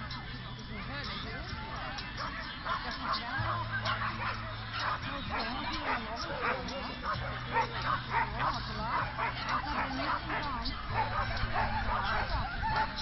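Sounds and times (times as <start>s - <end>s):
dog barking: 1.7s - 13.0s.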